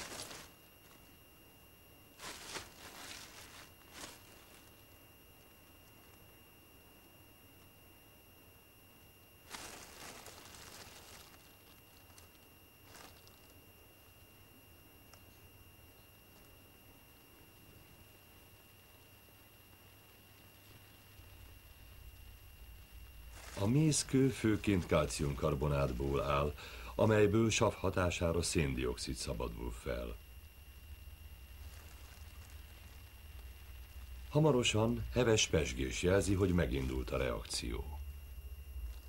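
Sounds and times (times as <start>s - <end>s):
plastic bag rustling: 0.0s - 1.2s, 2.2s - 6.2s, 9.4s - 13.6s, 21.2s - 27.7s, 28.4s - 37.7s, 38.8s - 39.0s
faint steady high tone: 0.0s - 39.0s.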